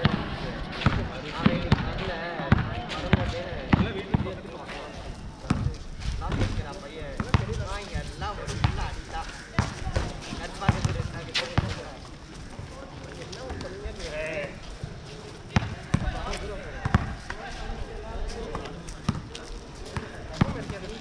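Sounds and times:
basketball bouncing on hard court: 0:07.2 - 0:07.6.

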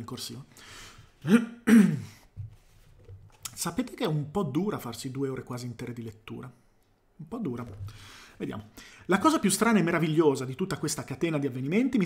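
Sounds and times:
man coughing: 0:01.2 - 0:02.2.

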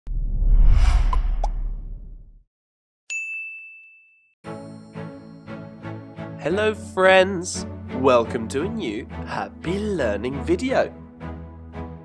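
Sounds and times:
bright ringing ding: 0:03.1 - 0:04.9.

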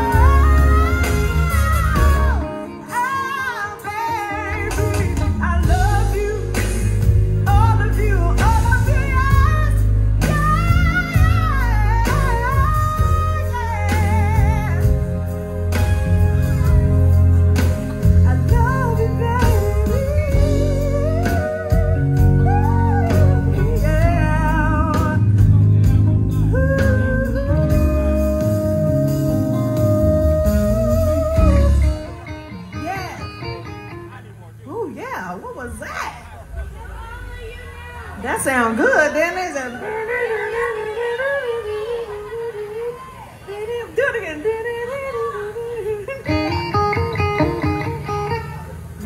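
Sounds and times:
woman singing into a microphone: 0:00.0 - 0:15.6, 0:18.0 - 0:25.5, 0:26.5 - 0:33.3, 0:38.3 - 0:48.3
band with heavy bass: 0:00.0 - 0:44.0, 0:44.8 - 0:49.0.

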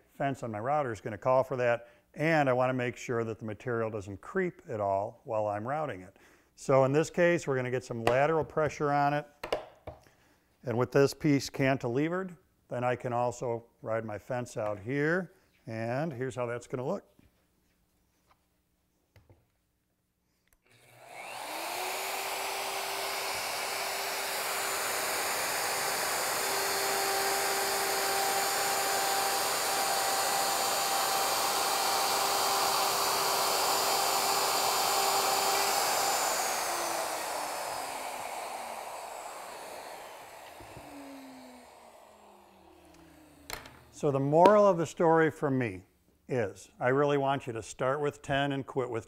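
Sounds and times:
router motor whining: 0:20.7 - 0:44.6
router cutting plywood: 0:20.7 - 0:44.7.

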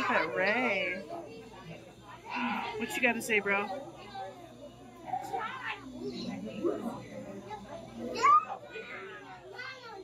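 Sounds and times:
visitor chatter: 0:00.0 - 0:10.0
children's voices: 0:01.2 - 0:10.0.

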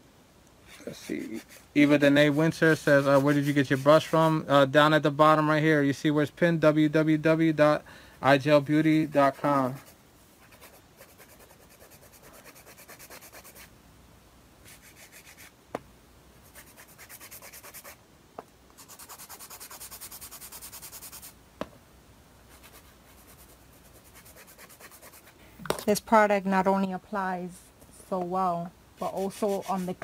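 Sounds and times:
nail file rasping on nail: 0:00.7 - 0:04.1, 0:10.5 - 0:13.7, 0:14.7 - 0:15.5, 0:16.5 - 0:18.0, 0:18.8 - 0:21.3, 0:22.6 - 0:25.3, 0:29.0 - 0:30.0.

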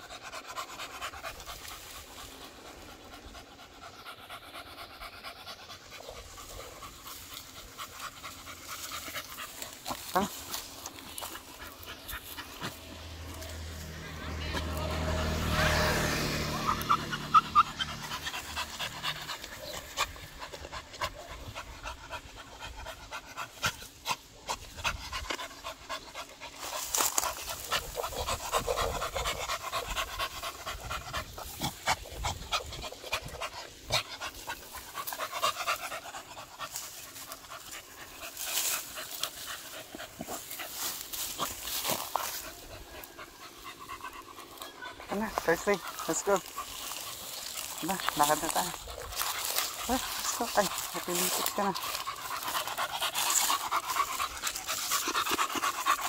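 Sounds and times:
claws scratching dirt: 0:00.0 - 0:56.0
dog panting: 0:00.0 - 0:56.0.

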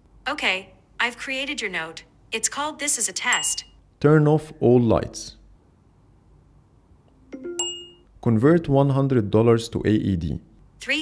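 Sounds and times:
electronic chime: 0:07.2 - 0:08.1.

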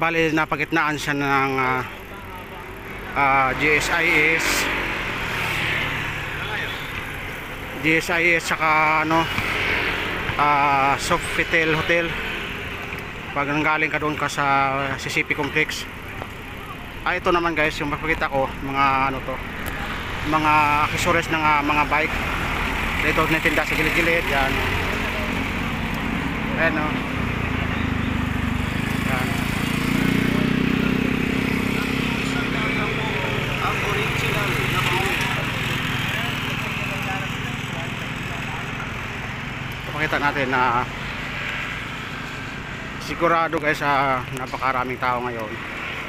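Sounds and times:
road traffic: 0:00.0 - 0:46.0.

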